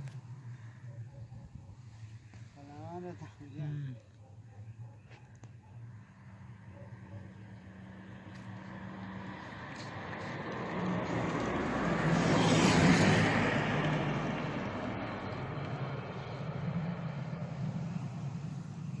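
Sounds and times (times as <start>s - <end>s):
vehicle passing by: 6.1s - 19.0s.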